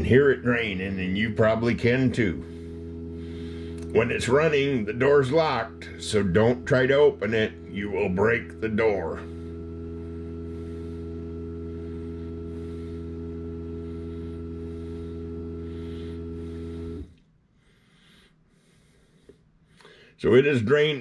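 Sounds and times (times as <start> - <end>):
dishwasher drain pump humming: 0.0 - 17.3.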